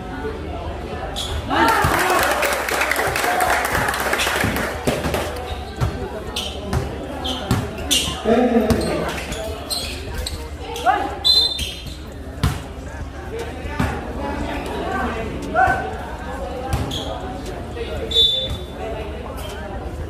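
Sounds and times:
spectators' voices and shouts: 0.0s - 20.0s
basketball bouncing on court: 6.6s - 7.8s.

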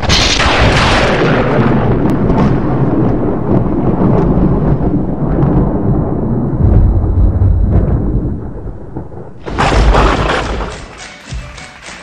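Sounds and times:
rolling thunder rumble: 0.0s - 10.9s.

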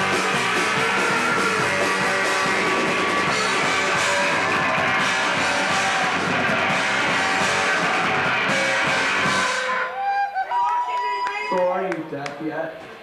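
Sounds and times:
live rock band playing: 0.0s - 10.6s.

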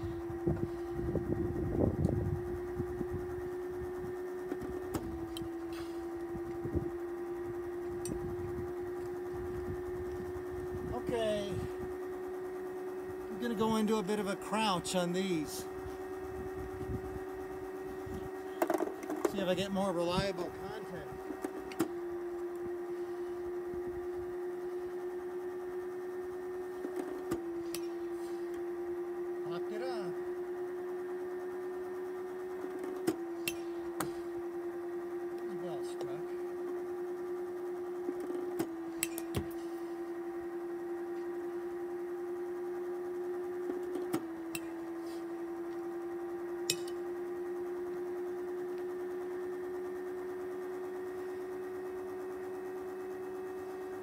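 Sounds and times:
pitching machine motor humming: 0.0s - 54.0s
metal bat striking ball: 39.0s - 39.5s, 46.7s - 47.0s.

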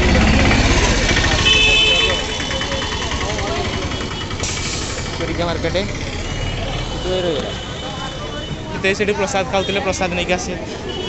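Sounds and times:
auto-rickshaw engine throbbing: 0.0s - 11.0s
crowd voices: 0.0s - 11.0s.

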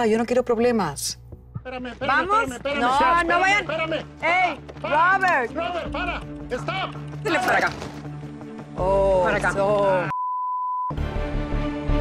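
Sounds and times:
high-pitched censor bleep: 10.1s - 11.0s
background music with sustained tones: 11.0s - 12.0s.

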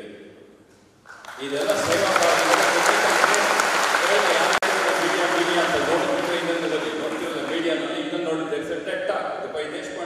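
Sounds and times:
audience applause: 1.1s - 8.0s
man speaking: 1.4s - 10.0s.

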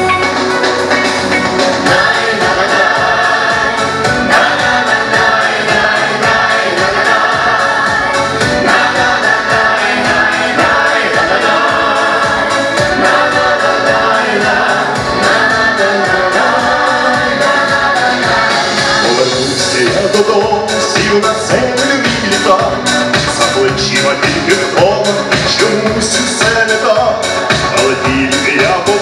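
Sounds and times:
mixed choir singing amplified: 1.1s - 29.0s.

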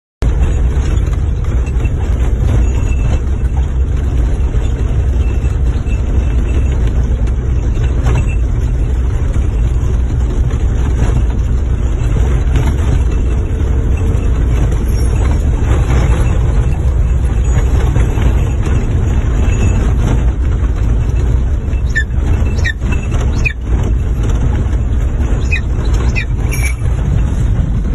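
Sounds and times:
vehicle engine and road noise: 0.2s - 27.9s.

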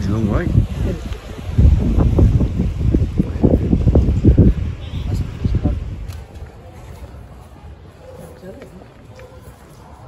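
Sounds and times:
wind buffeting microphone: 0.0s - 8.0s.

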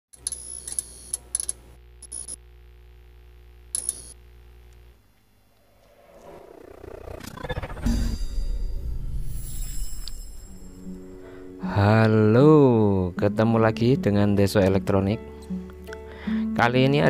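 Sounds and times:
steady low hum: 0.2s - 14.4s
crackle bursts: 1.8s - 11.4s.

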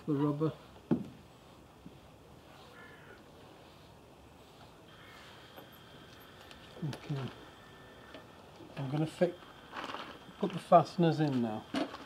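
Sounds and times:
faint bird call: 2.5s - 3.2s, 4.9s - 8.3s
thin steady high tone: 4.9s - 11.7s.

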